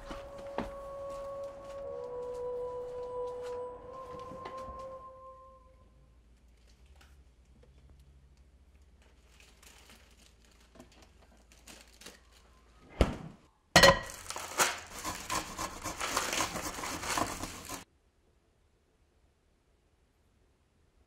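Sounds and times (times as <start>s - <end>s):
lettuce leaves crackling and snapping: 6.4s - 12.7s, 14.1s - 17.8s.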